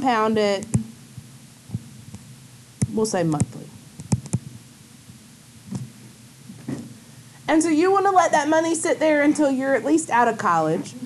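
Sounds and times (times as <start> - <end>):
low steady hum: 0.0 - 11.0
sharp click: 4.0 - 4.5.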